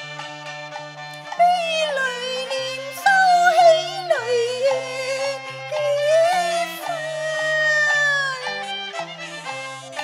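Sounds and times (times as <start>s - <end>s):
instrumental accompaniment: 0.0s - 10.0s
woman singing opera: 1.4s - 8.7s.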